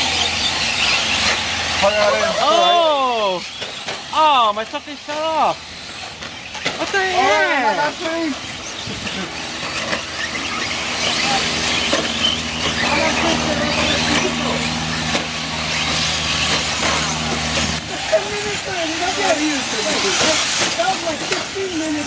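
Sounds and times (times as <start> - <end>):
electric motor whine: 0.0 - 22.0
steady low hum: 0.0 - 22.0
voices: 0.0 - 22.0.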